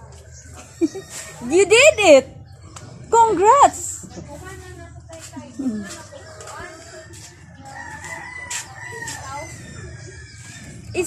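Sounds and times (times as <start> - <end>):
rooster crowing: 6.7 - 11.0.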